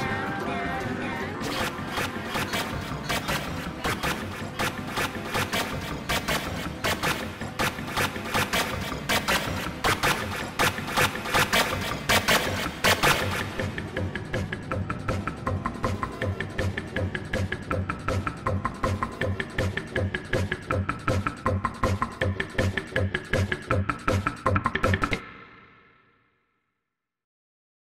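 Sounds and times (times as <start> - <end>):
overlapping video audio jumble: 0.0 - 24.5
rapid clicks and pulses: 1.4 - 25.3.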